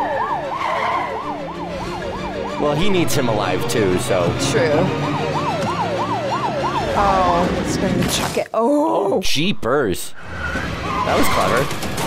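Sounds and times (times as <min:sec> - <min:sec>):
police siren yelping: 0:00.0 - 0:08.0, 0:10.3 - 0:11.8.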